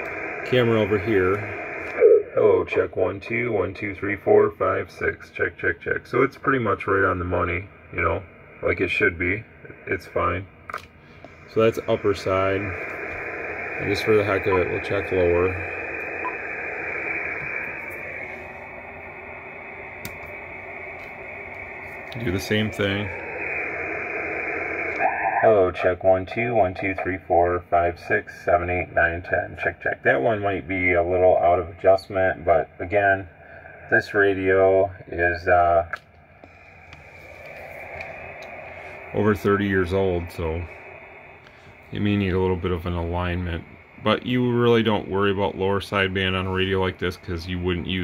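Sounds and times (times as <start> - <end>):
radio receiver hiss: 0.0 - 48.0
faint clicks: 35.9 - 38.6.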